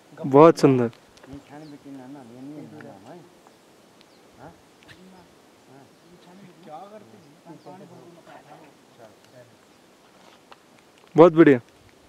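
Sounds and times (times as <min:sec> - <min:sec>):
man murmuring faintly: 0:04.4 - 0:09.2.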